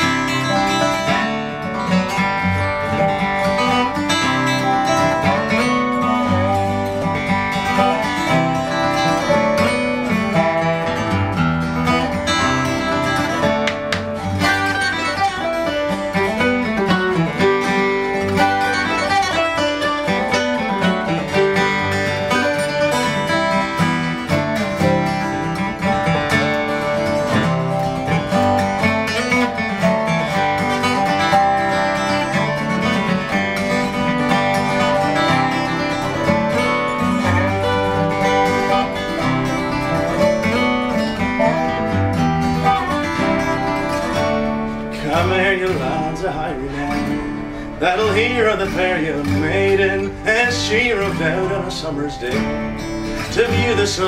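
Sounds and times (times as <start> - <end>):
lap steel guitar: 0.0 - 54.0
strummed acoustic guitars: 0.0 - 54.0.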